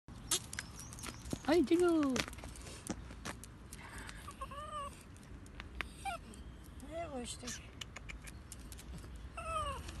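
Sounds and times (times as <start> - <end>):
dog whining: 4.4 - 5.0, 5.9 - 6.4, 9.4 - 10.0.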